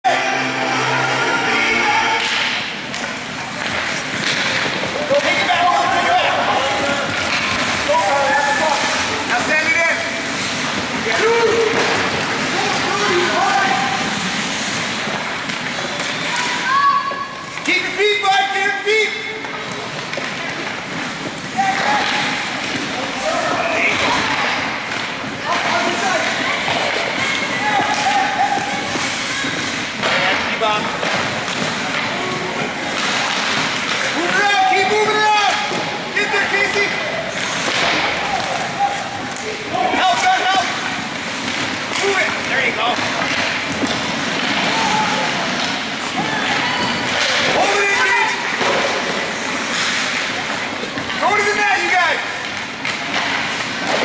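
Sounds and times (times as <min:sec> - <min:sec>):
people shouting: 0:00.0 - 0:02.7, 0:04.8 - 0:14.5, 0:16.0 - 0:17.6, 0:21.5 - 0:24.7, 0:25.4 - 0:29.8, 0:31.9 - 0:40.9, 0:44.3 - 0:48.8
skates on ice: 0:02.1 - 0:54.0
sticks and puck knocking: 0:02.2 - 0:14.2, 0:36.5 - 0:54.0
skates hissing on ice: 0:06.8 - 0:17.0.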